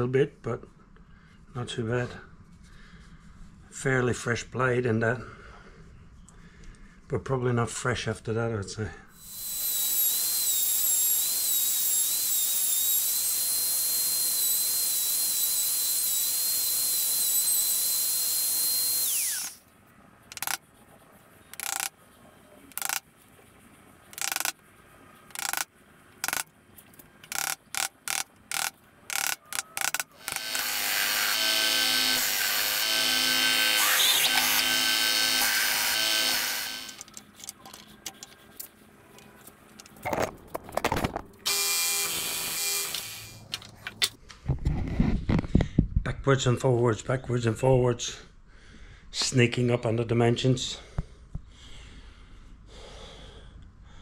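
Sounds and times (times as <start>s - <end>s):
router whining: 9.2s - 19.7s, 20.3s - 20.6s, 21.5s - 21.9s, 22.7s - 23.0s, 24.1s - 24.6s, 25.3s - 26.5s, 27.3s - 38.2s, 40.9s - 43.6s.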